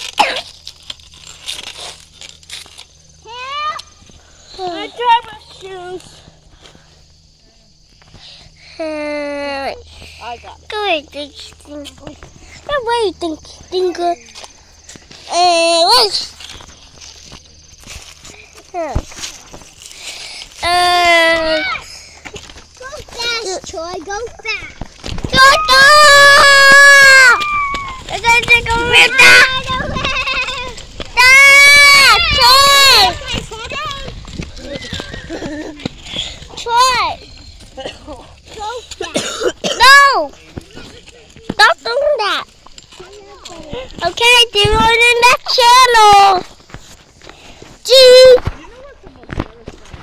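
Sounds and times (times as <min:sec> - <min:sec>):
child's high-pitched calls: 0:03.2 - 0:04.0, 0:25.3 - 0:35.4
footsteps on leaves: 0:11.3 - 0:39.0.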